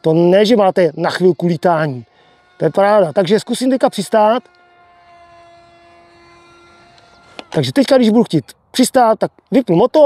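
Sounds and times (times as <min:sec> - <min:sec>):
electric motor whine: 0:00.0 - 0:08.7.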